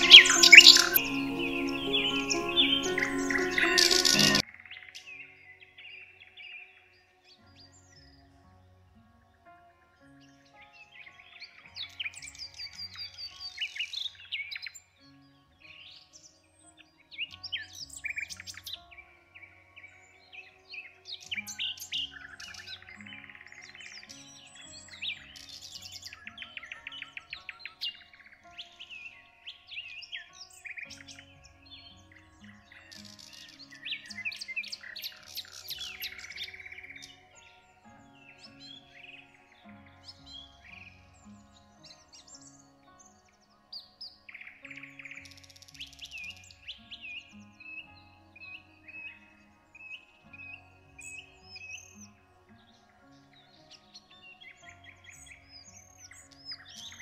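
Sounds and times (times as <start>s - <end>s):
soft background music: 0.0s - 57.0s
songbirds chirping and trilling: 0.0s - 57.0s.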